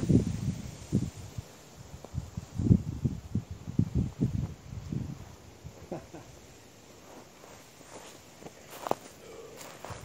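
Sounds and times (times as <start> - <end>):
footsteps on grass: 6.8 - 10.0.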